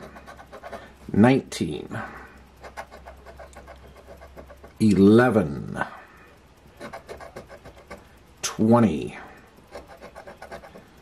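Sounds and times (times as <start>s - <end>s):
coin scraping scratch-off ticket: 2.6s - 4.8s, 6.8s - 8.1s, 9.7s - 10.9s.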